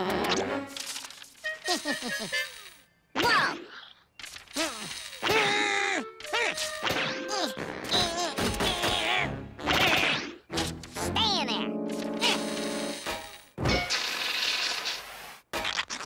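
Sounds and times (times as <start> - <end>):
comic cartoon music: 5.2 - 13.9.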